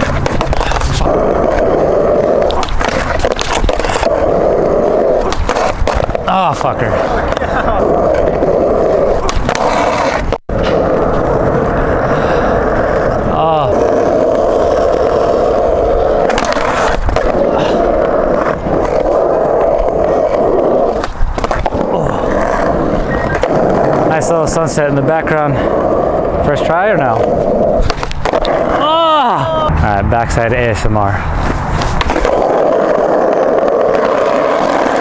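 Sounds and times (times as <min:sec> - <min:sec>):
skateboard wheels rolling on concrete: 0:00.0 - 0:35.0.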